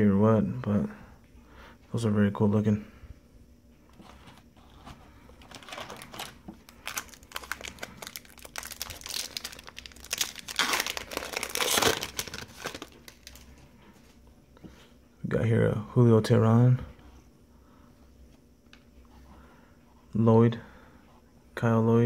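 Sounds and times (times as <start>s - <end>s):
foil wrapper crinkling and tearing: 5.4s - 13.6s.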